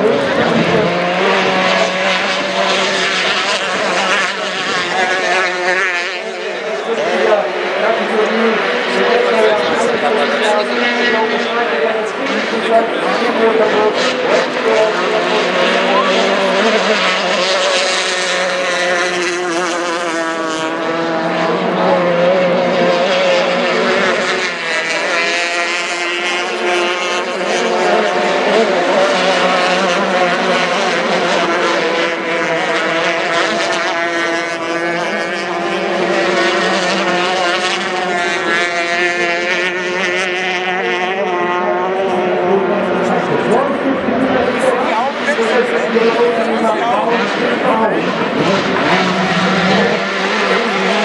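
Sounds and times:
racing boat engines whining: 0.0 - 51.0.

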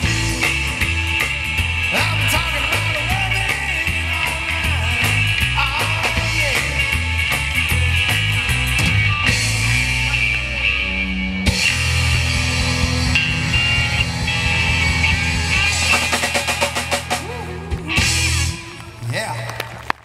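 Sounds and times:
drum kit: 0.0 - 19.4
bass guitar: 0.0 - 20.0
electric guitar: 0.0 - 20.0.

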